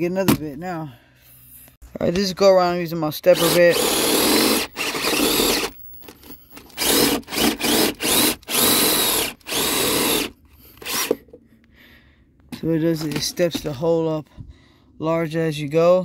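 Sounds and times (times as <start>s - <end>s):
power drill boring through wood: 3.3s - 11.2s.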